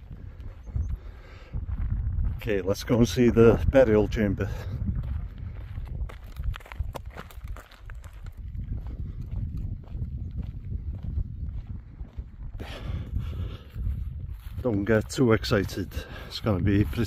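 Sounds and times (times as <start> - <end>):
footsteps on stony path: 0.0 - 17.0
wind rumble on microphone: 0.0 - 17.0.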